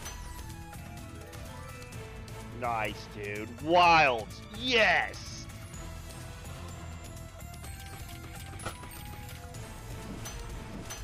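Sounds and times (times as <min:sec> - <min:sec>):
slot game music: 0:00.0 - 0:11.0.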